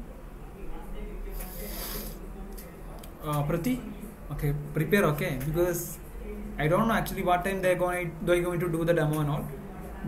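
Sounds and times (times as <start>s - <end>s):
faint background speech: 0.0s - 10.0s
short hiss: 1.3s - 2.2s.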